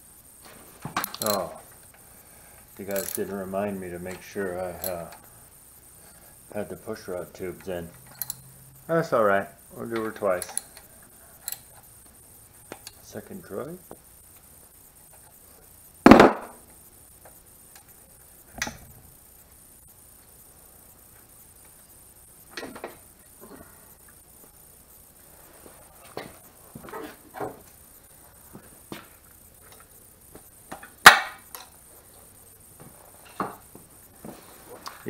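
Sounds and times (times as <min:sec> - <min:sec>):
metal clinks and knocks of tools: 0:01.0 - 0:01.6, 0:02.8 - 0:03.4, 0:04.1 - 0:05.2, 0:08.0 - 0:08.5, 0:10.0 - 0:11.8.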